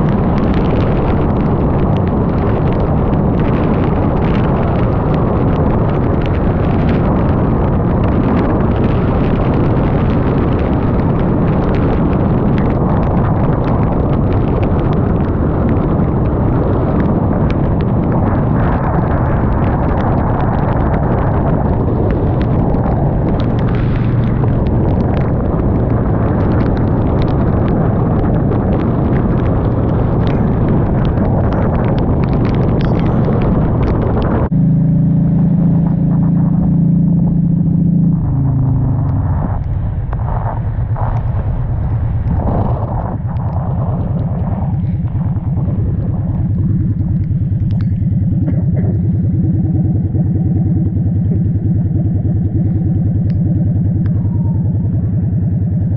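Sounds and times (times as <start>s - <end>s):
raindrops ticking on camera: 0.0s - 34.5s, 38.0s - 55.1s
motorcycle engine running: 0.0s - 55.9s
wind rumble on microphone: 0.0s - 55.9s.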